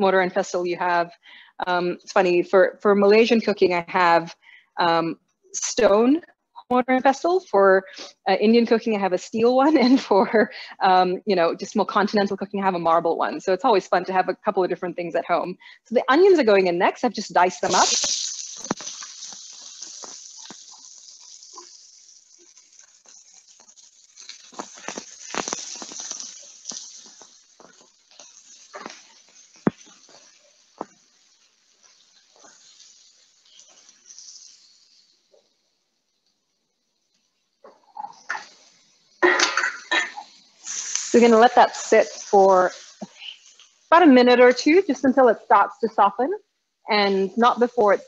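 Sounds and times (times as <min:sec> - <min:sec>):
onions sizzling in a frying pan: 0:00.0 - 0:06.2, 0:06.8 - 0:48.0
person speaking: 0:13.9 - 0:18.1, 0:41.1 - 0:48.0
spatula scraping a pan: 0:17.5 - 0:35.2.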